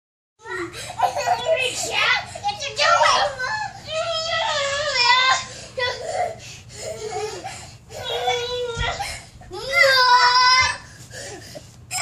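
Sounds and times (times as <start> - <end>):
toddlers shrieking and babbling: 0.9 - 11.0.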